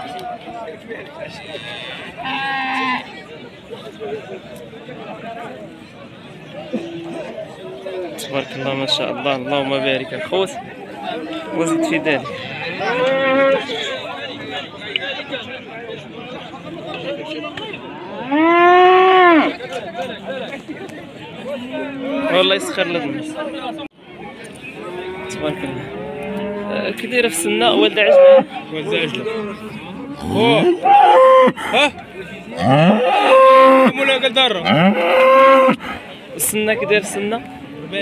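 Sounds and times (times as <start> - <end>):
cattle mooing: 29.3 - 31.6, 32.6 - 34.0, 34.6 - 35.8.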